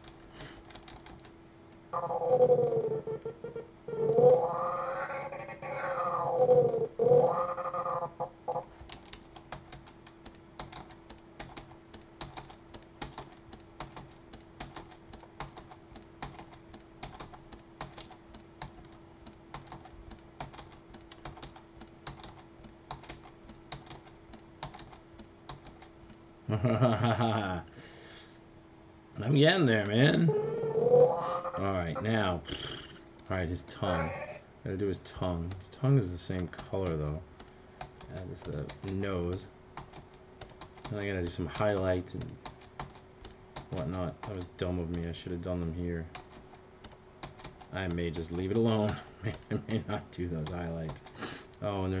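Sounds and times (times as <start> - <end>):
keyboard and mouse clicks: 0.0 - 1.3, 8.8 - 26.2, 39.8 - 45.1, 46.1 - 49.8
cartoon cat meowing: 4.3 - 6.4, 33.9 - 34.4.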